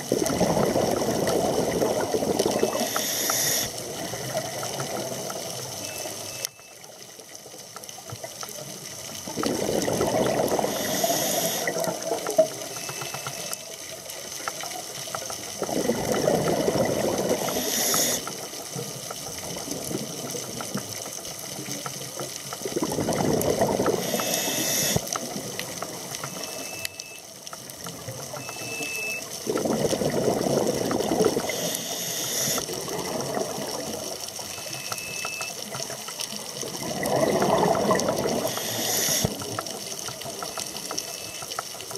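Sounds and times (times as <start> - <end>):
exhaled bubbles rumbling underwater: 0.0 - 6.4, 7.9 - 12.9, 13.9 - 26.8, 27.5 - 41.9
regulator hiss: 2.6 - 3.8, 10.6 - 11.7, 17.4 - 18.4, 24.0 - 25.1, 31.4 - 32.7, 38.4 - 39.4.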